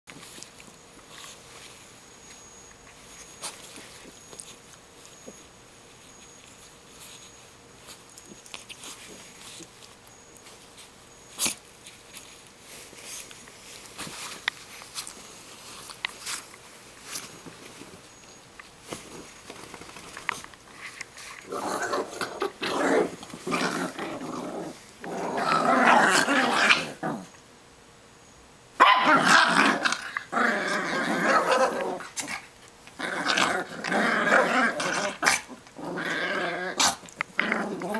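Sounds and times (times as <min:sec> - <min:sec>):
small dog noises: 0:28.8 - 0:37.9.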